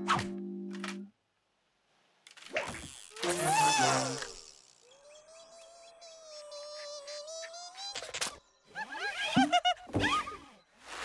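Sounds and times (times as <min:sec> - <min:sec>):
bird chirps: 0:04.8 - 0:09.4.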